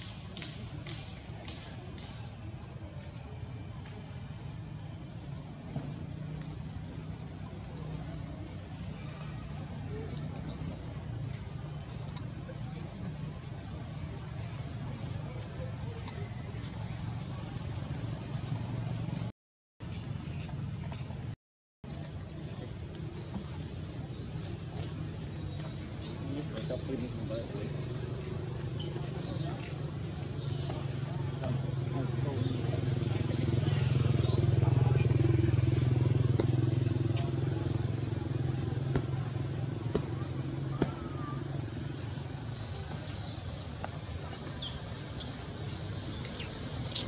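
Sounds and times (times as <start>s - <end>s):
vehicle engine humming: 22.7s - 47.0s.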